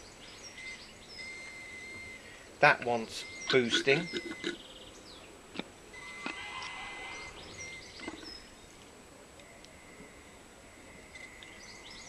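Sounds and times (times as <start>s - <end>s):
bird chirping: 0.0s - 5.4s, 6.0s - 8.8s, 9.5s - 12.0s.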